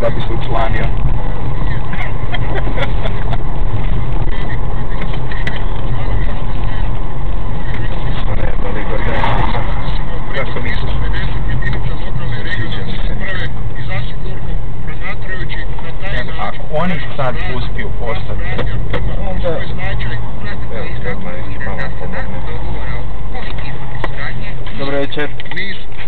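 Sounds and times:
car engine and road rumble: 0.0s - 26.0s
indistinct voices talking: 0.0s - 26.0s.

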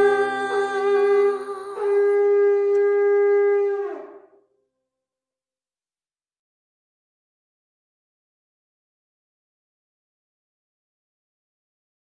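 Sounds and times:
shofar blast: 0.0s - 4.3s.

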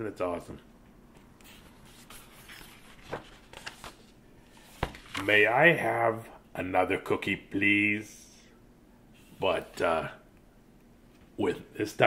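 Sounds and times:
pages scraping: 1.4s - 5.3s
paper rustling: 1.4s - 5.3s
book closing: 1.5s - 5.3s.

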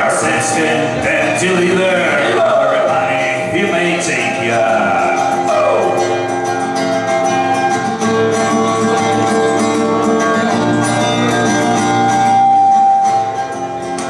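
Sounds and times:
acoustic guitar folk tune: 0.0s - 14.0s
melody of long held notes: 0.2s - 14.0s.

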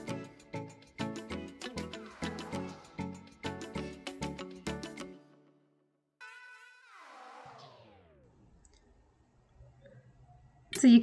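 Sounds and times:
background music: 0.0s - 8.5s
descending pitch slide: 6.9s - 8.6s.

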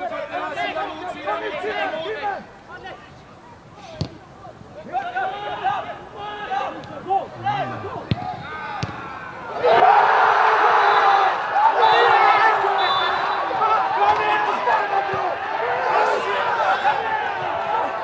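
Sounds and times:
players calling out: 0.4s - 18.0s
ball kicks: 4.0s - 4.2s, 8.0s - 9.1s
crowd shouting: 4.5s - 18.0s.

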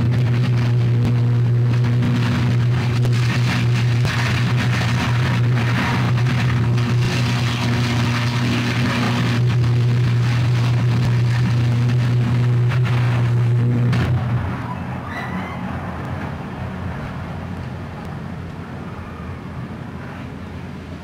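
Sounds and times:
electrical arc buzzing and crackling: 0.0s - 14.6s
fire rushing noise: 0.0s - 21.0s.

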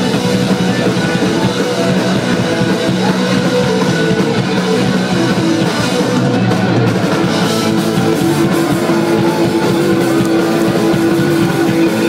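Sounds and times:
distorted electric guitars: 0.0s - 12.0s
drum kit: 0.0s - 12.0s.

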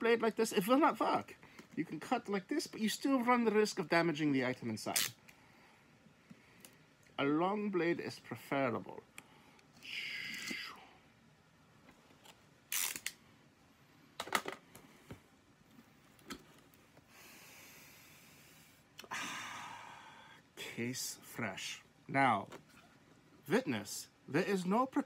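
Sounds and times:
knife slicing packing tape: 12.7s - 13.1s.

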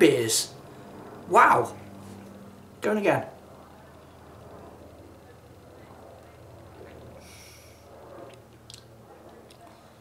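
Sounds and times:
low steady hum: 0.0s - 10.0s
hiss of air from mouth: 7.2s - 7.9s
mouth and lip clicks: 8.3s - 8.9s.

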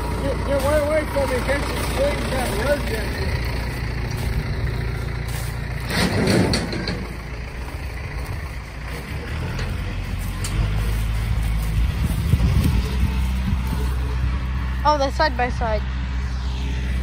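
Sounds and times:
utility vehicle engine running: 0.0s - 17.0s.

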